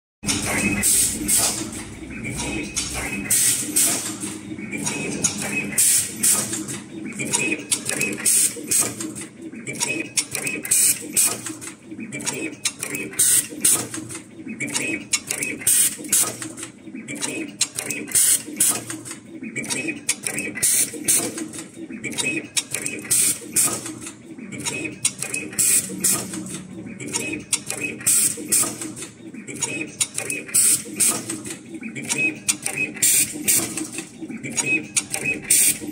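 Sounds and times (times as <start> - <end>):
wire cutting machine clicking: 0.2 - 35.9.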